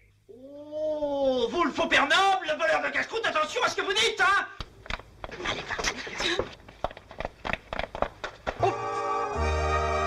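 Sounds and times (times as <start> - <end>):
knocks and scuffs of people moving: 4.7 - 8.6.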